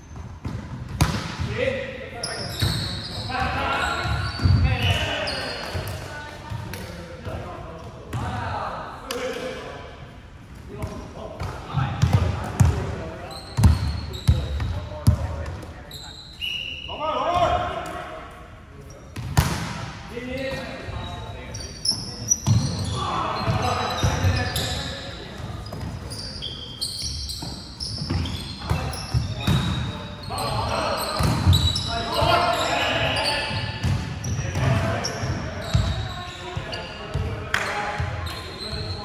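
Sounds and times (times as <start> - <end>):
volleyball struck with smacks: 0.9 - 1.4
players shouting calls: 28.2 - 39.0.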